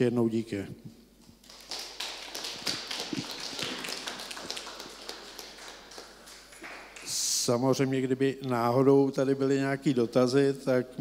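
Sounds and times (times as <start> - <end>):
audience applauding: 1.4 - 7.3.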